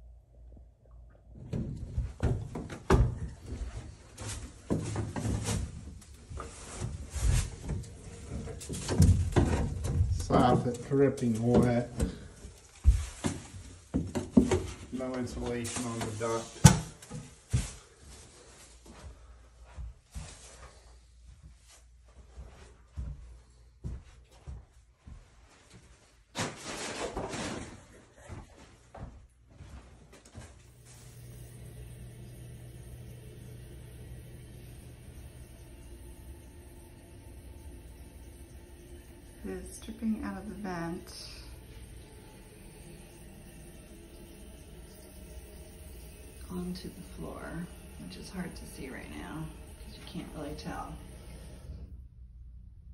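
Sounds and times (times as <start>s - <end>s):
fan humming with air rush: 30.6s - 52.8s.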